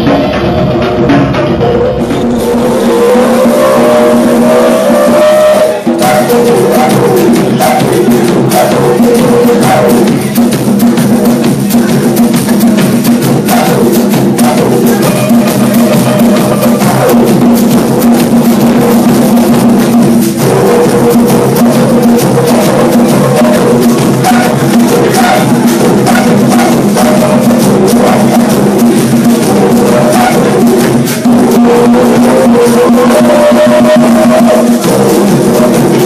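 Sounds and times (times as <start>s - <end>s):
drum and cymbal hits: 0.0s - 36.0s
live band playing loud music: 0.0s - 36.0s.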